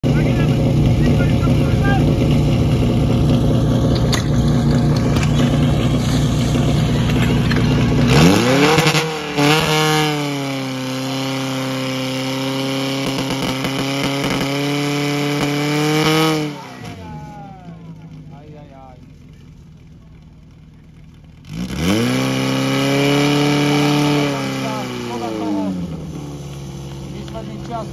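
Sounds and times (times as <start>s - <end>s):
pump engine revving: 0.0s - 19.2s, 21.4s - 27.9s.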